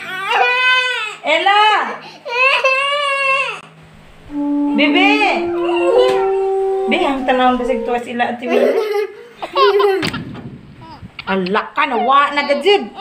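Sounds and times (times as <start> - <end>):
held musical notes: 3.8 - 8.4.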